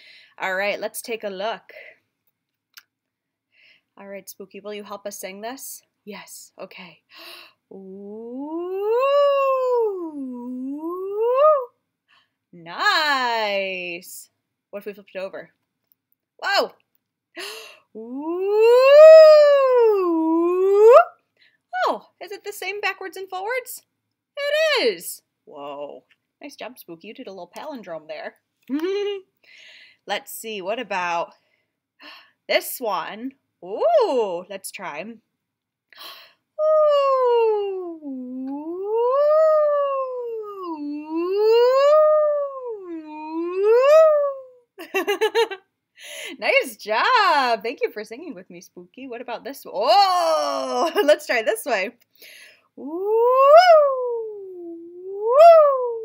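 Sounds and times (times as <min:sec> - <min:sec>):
person speaking: 0:07.7 - 0:11.7
woman singing long ooo: 0:07.7 - 0:11.7, 0:18.0 - 0:21.1, 0:36.6 - 0:44.6, 0:52.8 - 0:56.0.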